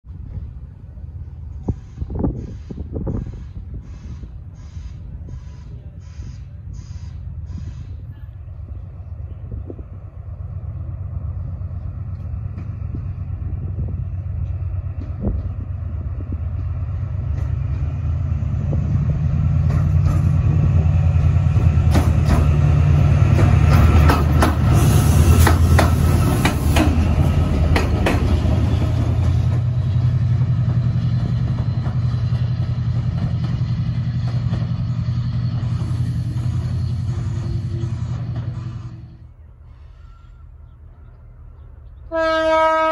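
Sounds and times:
diesel locomotive engines passing: 0.0s - 42.9s
rail noise: 0.0s - 42.9s.

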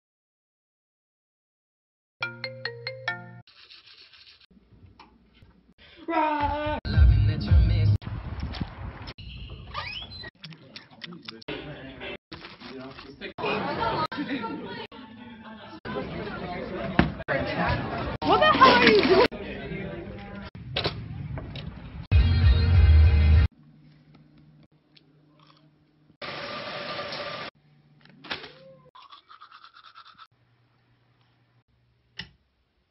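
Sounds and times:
toothbrush scrubbing teeth: 3.5s - 4.5s, 29.0s - 30.3s.

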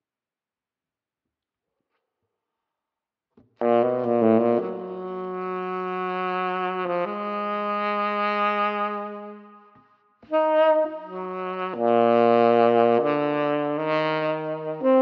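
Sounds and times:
tenor saxophone playing: 3.6s - 15.0s.

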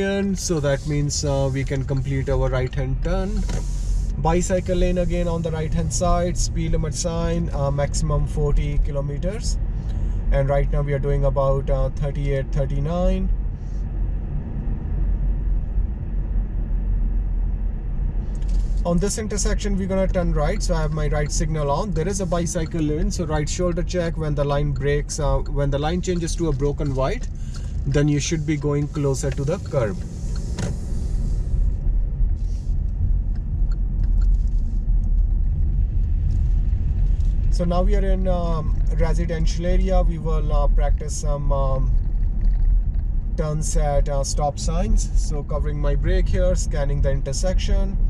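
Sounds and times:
man talking: 0.0s - 3.6s, 4.2s - 9.6s, 10.3s - 13.3s, 18.8s - 30.0s, 37.5s - 42.0s, 43.4s - 48.0s
car interior road rumble: 0.0s - 48.0s.

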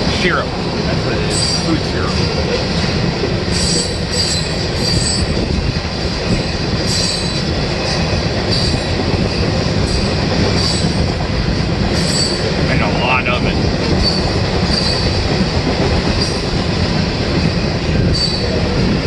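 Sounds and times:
freight train rumbling past: 0.0s - 19.0s
high-pitched wheel squeals: 3.5s - 5.4s, 6.4s - 9.0s, 14.0s - 15.1s, 18.0s - 18.6s.

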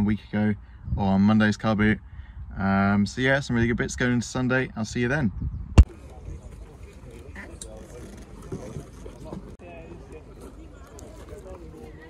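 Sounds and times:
wind rumble on microphone: 0.7s - 6.9s.

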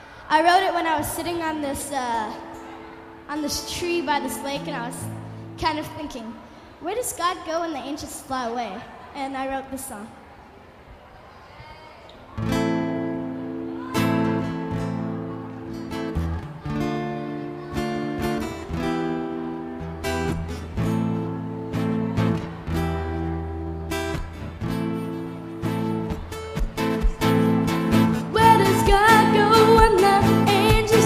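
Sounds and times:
acoustic guitar strumming chords: 12.4s - 31.0s.

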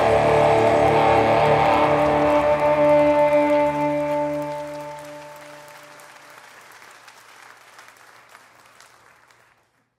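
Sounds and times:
electric guitar chord ringing: 0.0s - 5.7s
crowd applause: 0.0s - 9.9s.

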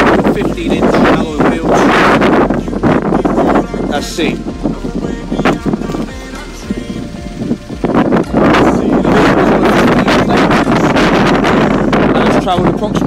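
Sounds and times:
background music: 0.0s - 13.0s
wind buffeting microphone: 0.0s - 13.0s.

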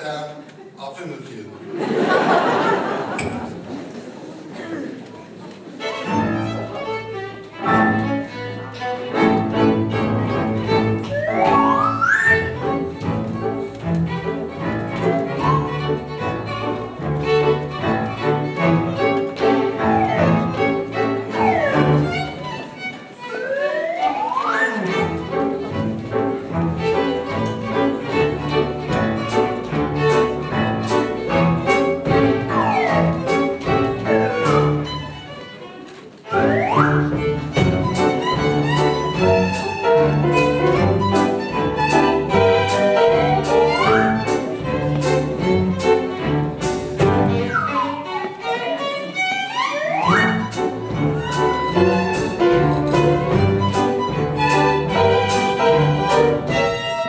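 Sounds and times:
small ensemble playing: 1.5s - 57.0s
violin sliding in pitch: 5.8s - 57.0s.

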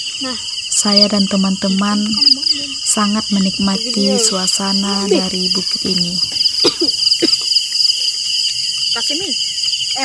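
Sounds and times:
crickets chirring: 0.0s - 10.0s.

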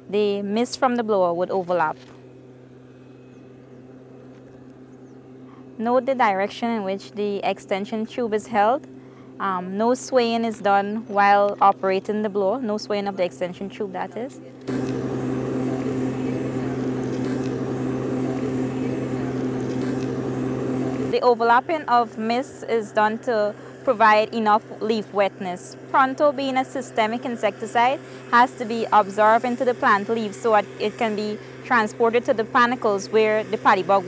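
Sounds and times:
mist blower engine humming: 0.0s - 34.0s.

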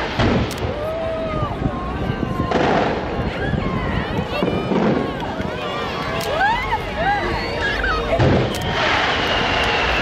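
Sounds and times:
fireworks bangs: 0.0s - 1.5s, 2.1s - 3.6s, 4.3s - 5.6s, 8.1s - 10.0s
crowd voices: 0.0s - 10.0s.

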